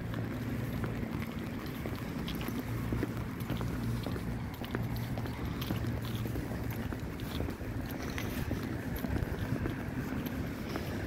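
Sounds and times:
footsteps on stone paving: 0.0 - 11.0
wind buffeting microphone: 0.0 - 11.0.

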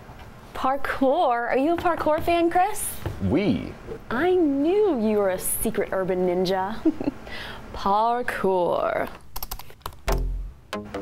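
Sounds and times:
laptop keyboard typing: 9.3 - 10.2
music with low sustained note: 10.1 - 11.0.

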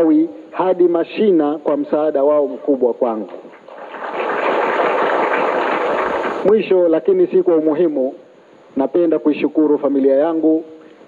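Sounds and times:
audience applauding: 3.6 - 6.5.

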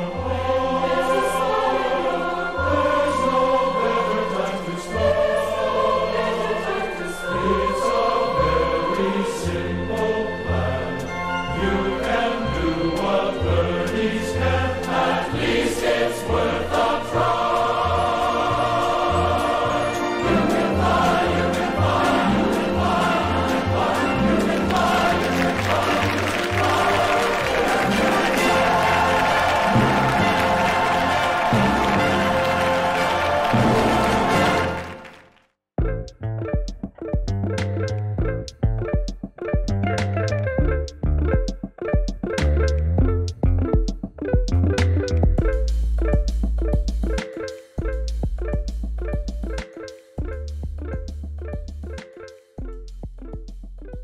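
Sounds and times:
group singing: 0.0 - 35.1
band accompaniment: 20.3 - 35.2
pulsing bass line: 35.8 - 47.2, 47.8 - 49.6, 50.2 - 52.0.

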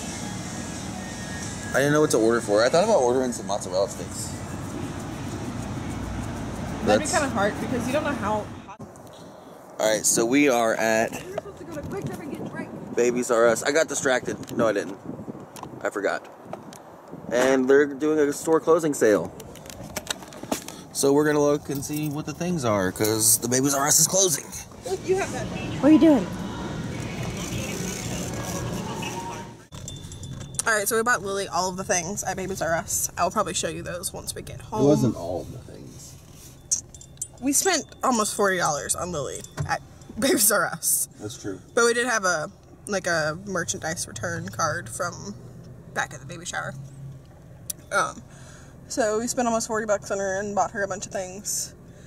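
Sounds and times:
person speaking: 34.6 - 36.2.

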